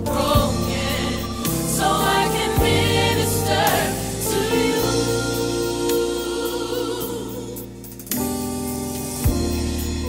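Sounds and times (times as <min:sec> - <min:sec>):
choir singing held chord: 0:00.0 - 0:07.8.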